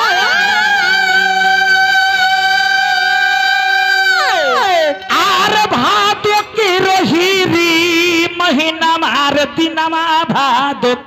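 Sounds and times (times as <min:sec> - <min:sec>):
man singing long note: 0:00.0 - 0:11.0.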